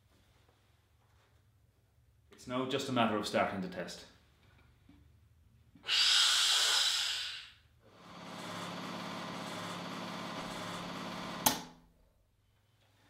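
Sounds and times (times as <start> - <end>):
high-pitched air hiss: 5.8 - 7.6.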